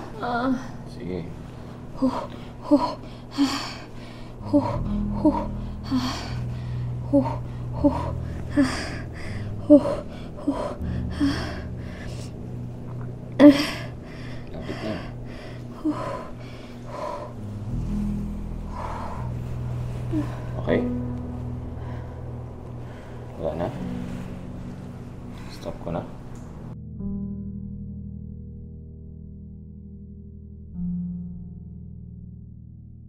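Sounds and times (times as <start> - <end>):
steady low hum: 0.0 - 27.3
woman breathing hard and gasping: 1.9 - 12.4, 13.4 - 20.6
woman groaning low: 2.0 - 12.2, 13.3 - 15.2, 15.8 - 17.8.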